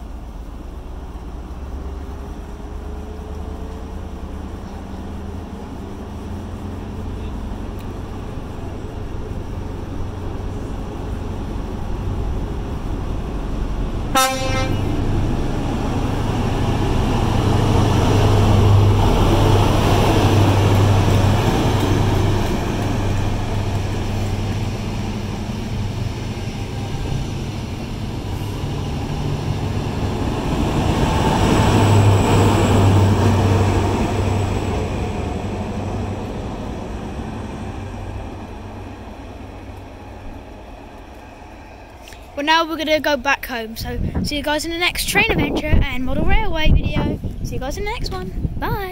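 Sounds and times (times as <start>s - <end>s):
diesel engine drone: 0.0s - 43.7s
wheel-on-rail noise: 0.0s - 48.6s
train horn toot: 14.1s - 14.9s.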